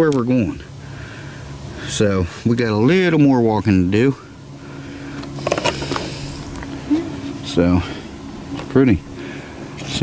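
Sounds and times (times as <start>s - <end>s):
distant outboard boat motor humming: 0.0s - 10.0s.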